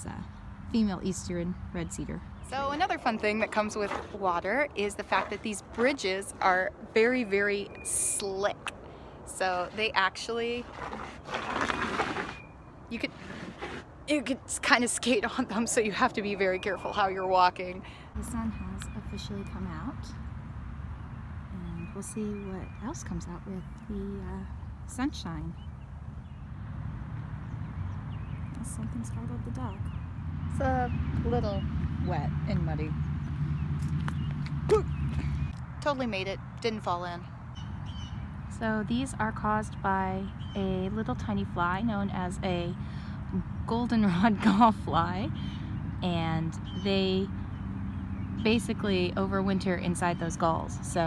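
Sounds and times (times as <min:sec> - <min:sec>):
sneaker scraping on wet wood: 0:03.8 - 0:04.2, 0:10.6 - 0:12.4, 0:13.0 - 0:13.9.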